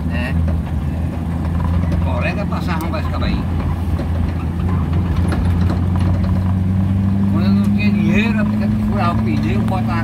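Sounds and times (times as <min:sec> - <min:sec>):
car engine droning: 0:00.0 - 0:10.0
road noise: 0:00.0 - 0:10.0.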